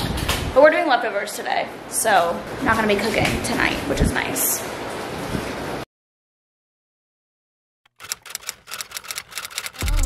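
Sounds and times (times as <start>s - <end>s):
typewriter key clicks: 7.9s - 10.0s.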